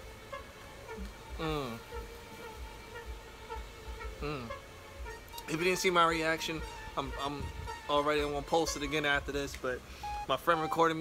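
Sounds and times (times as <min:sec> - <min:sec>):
faint buzzing hum: 0:00.0 - 0:11.0
low rumbles on microphone: 0:06.2 - 0:07.8.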